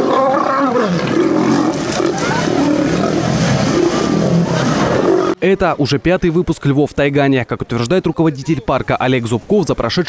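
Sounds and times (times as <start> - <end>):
lions growling and roaring: 0.0 - 5.4.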